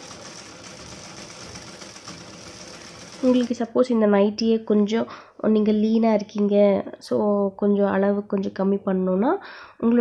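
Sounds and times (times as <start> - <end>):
sewing machine running: 0.0 - 3.6.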